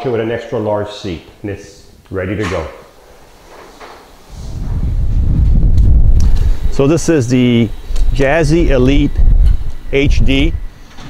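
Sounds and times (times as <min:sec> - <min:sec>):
wind buffeting microphone: 0:04.3 - 0:10.8.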